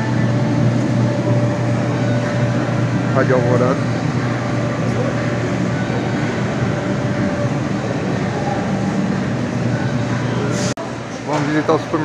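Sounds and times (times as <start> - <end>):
air conditioning hum and hiss: 0.0 - 12.0.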